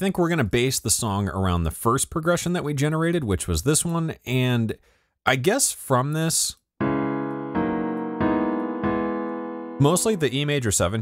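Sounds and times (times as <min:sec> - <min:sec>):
piano chords: 0:06.8 - 0:10.6.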